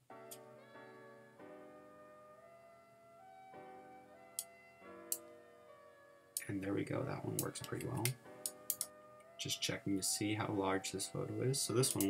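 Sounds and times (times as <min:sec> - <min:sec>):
soft music of held notes: 0:00.0 - 0:12.0.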